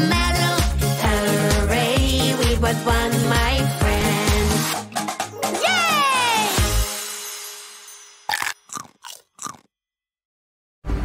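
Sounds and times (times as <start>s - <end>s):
cartoon cookie munching: 8.3s - 9.7s.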